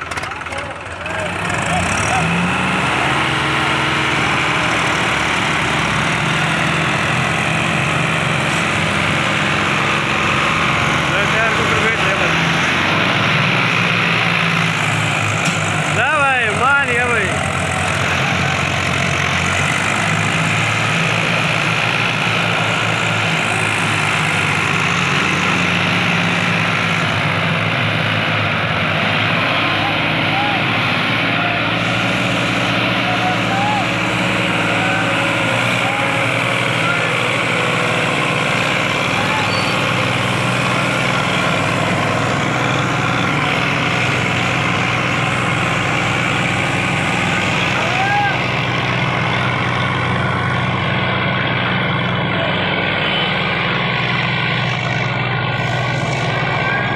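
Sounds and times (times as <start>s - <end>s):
diesel tractor engines droning: 0.0s - 56.9s
people shouting: 29.6s - 31.8s, 32.9s - 37.8s, 47.4s - 48.7s.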